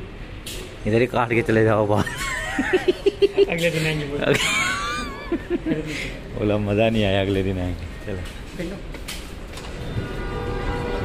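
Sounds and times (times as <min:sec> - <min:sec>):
people laughing: 0:01.9 - 0:06.3.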